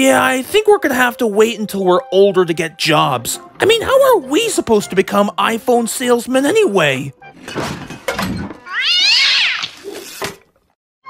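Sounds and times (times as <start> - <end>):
cartoon cat yowl: 8.6 - 9.8.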